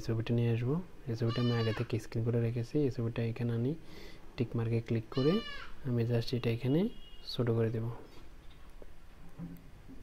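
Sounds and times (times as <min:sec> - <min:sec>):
man speaking: 0:00.0 - 0:03.8, 0:04.4 - 0:08.0.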